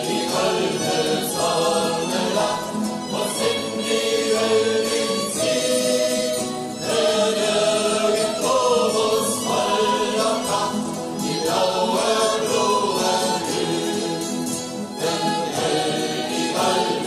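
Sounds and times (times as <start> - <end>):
group of voices singing: 0.0 - 17.0.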